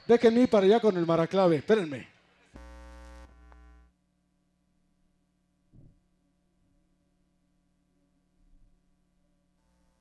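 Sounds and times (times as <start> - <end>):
electrical mains buzz: 2.3 - 10.0.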